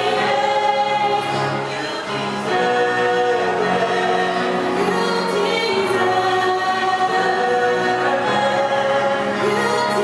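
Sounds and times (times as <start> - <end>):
small choir singing long notes: 0.0 - 10.0.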